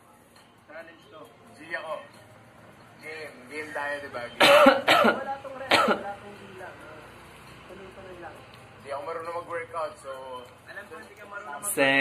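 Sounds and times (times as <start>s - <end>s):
man coughing: 4.4s - 6.1s.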